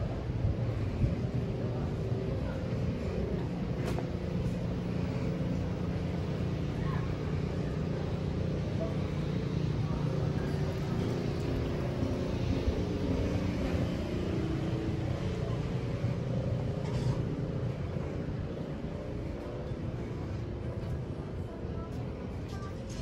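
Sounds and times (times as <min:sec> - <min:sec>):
distant road traffic: 0:00.0 - 0:22.8.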